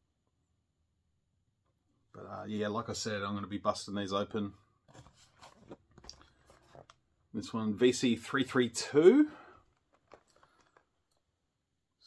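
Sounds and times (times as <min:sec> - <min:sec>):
plastic toy package crinkling: 0:09.6 - 0:11.2.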